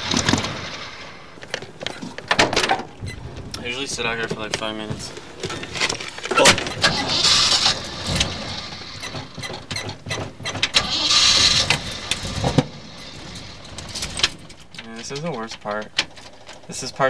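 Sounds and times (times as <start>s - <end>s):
clicks and knocks in car cabin: 9.0s - 10.8s.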